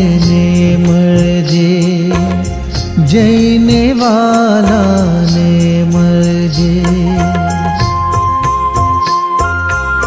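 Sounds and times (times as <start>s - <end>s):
devotional song: 0.0s - 10.0s
instrumental melody: 0.0s - 10.0s
steady percussion beat: 0.0s - 10.0s.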